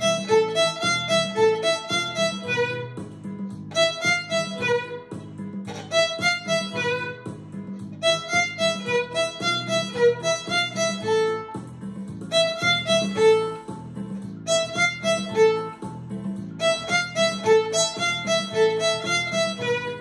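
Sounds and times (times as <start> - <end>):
lively violin tune: 0.0 - 20.0.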